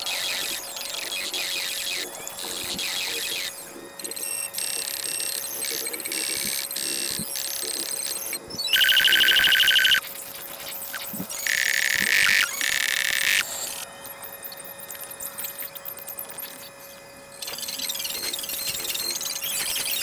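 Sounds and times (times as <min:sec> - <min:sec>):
high-pitched electronic ringing tones: 0:03.2 - 0:10.1, 0:10.8 - 0:20.0
loud rapid electronic trill: 0:08.7 - 0:10.0, 0:11.4 - 0:13.4.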